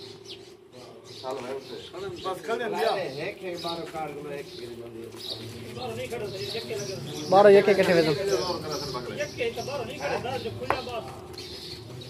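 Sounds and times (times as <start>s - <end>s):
birds calling: 0.0s - 12.0s
faint men's voices talking: 0.0s - 12.0s.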